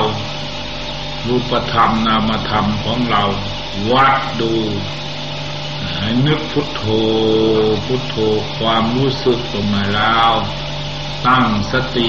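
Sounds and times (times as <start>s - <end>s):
man speaking: 0.0s - 0.3s, 1.2s - 5.0s, 5.8s - 10.6s, 11.2s - 12.0s
steady low hum: 0.0s - 12.0s.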